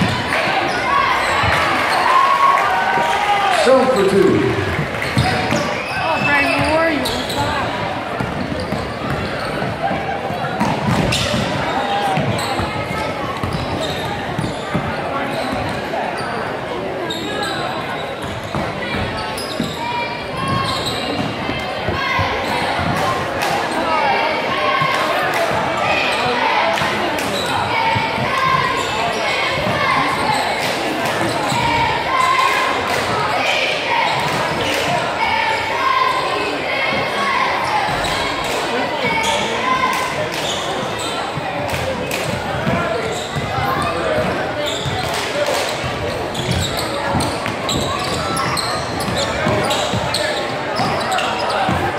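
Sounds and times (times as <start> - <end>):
crowd talking and calling out: 0.0 - 51.9.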